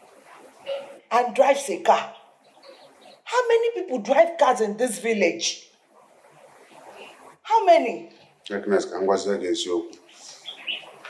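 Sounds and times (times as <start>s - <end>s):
bird chirps: 2.0s - 3.3s, 10.1s - 11.0s
man speaking: 8.4s - 10.4s.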